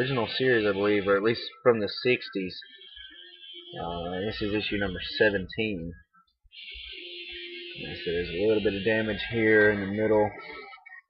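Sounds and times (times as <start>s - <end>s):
man speaking: 0.0s - 2.6s, 3.8s - 6.1s, 7.8s - 10.6s.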